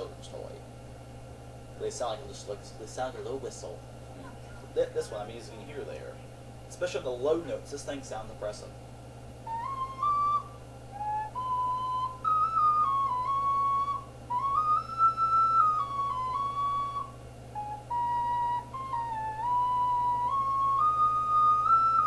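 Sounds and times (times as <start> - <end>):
ocarina melody: 9.4 - 22.0.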